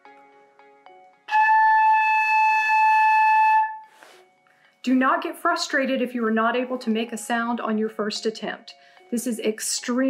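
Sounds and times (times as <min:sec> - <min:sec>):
breathy high flute note: 0:01.3 - 0:04.2.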